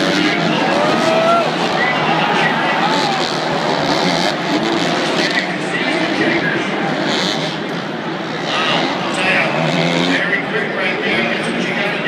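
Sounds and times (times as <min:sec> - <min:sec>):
dirt bike engine revving: 0:00.0 - 0:11.5
spectators talking: 0:00.0 - 0:12.0
stadium crowd noise: 0:00.0 - 0:12.0.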